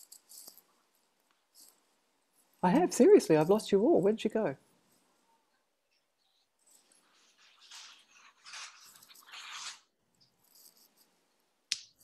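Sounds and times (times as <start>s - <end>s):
faint rustling: 4.6s - 11.2s.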